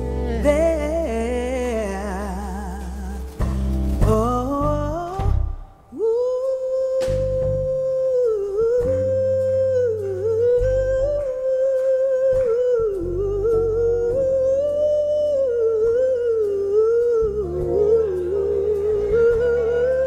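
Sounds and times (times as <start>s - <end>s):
woman singing wordless line: 0.0s - 3.4s, 4.0s - 20.0s
electric bass notes: 0.0s - 20.0s.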